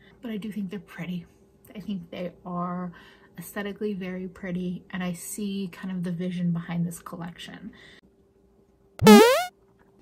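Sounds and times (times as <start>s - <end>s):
quick upward-sliding synth tone: 9.0s - 9.5s.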